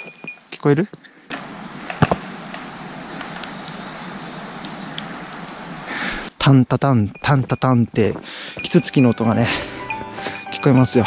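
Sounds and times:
woodpecker tapping on tree: 1.3s - 5.6s
steady rushing noise: 1.4s - 6.4s.

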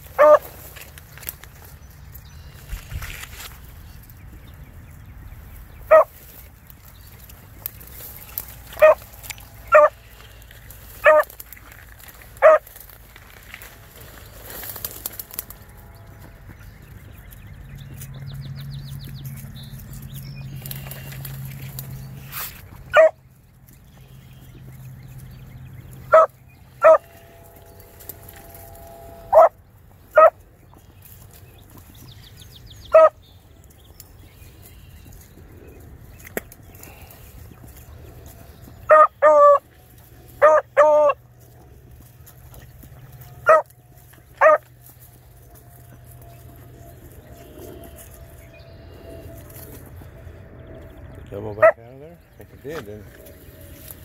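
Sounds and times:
dog barking and baying: 0.2s - 0.5s, 5.9s - 6.1s, 8.8s - 9.0s, 9.7s - 10.0s, 11.0s - 11.3s, 12.4s - 12.6s, 22.9s - 23.2s, 26.1s - 27.1s, 29.3s - 30.4s, 32.9s - 33.2s, 38.9s - 39.6s, 40.4s - 41.2s, 43.4s - 43.7s, 44.4s - 44.7s, 51.6s - 51.8s.

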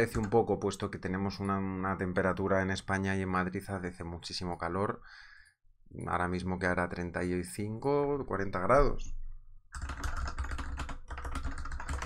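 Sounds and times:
fast typing on keyboard: 0.0s - 0.4s, 9.8s - 12.0s.

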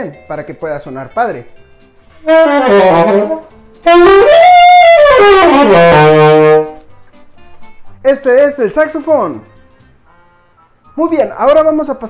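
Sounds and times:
saxophone playing: 2.2s - 6.9s.

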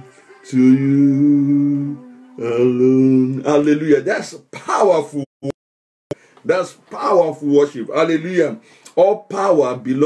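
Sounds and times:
man singing unaccompanied: 0.0s - 3.9s.

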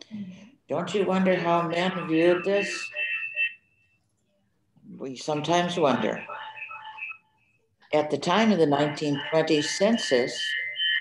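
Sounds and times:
person speaking: 0.0s - 3.2s, 4.9s - 7.1s, 7.9s - 10.6s
high ringing feedback tone: 0.9s - 4.0s.

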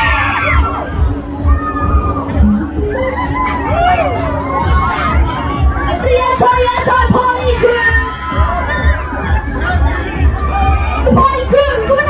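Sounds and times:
riders screaming: 0.0s - 2.3s.

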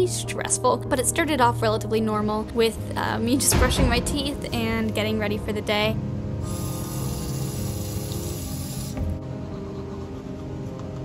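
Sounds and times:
background music: 0.0s - 11.0s
sink tap running: 6.5s - 9.0s.

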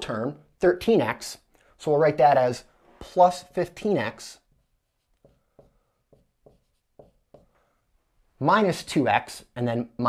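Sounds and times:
marker writing on a whiteboard: 3.0s - 7.8s.

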